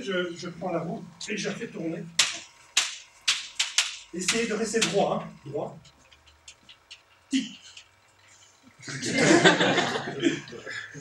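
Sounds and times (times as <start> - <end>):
hand slapping spinning wheel rim: 2.2 - 7.9.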